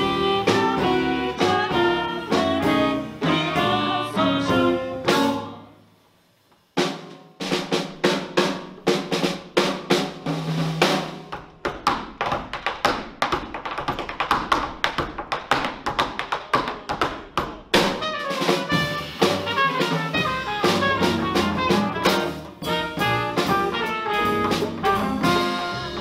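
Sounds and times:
horns and band playing: 0.0 - 5.7, 17.8 - 26.0
jazz drum solo: 0.0 - 5.8, 6.6 - 11.6, 16.8 - 26.0.

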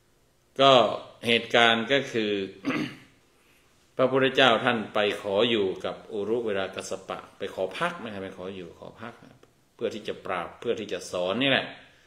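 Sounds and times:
man clearing his throat: 2.6 - 3.2.

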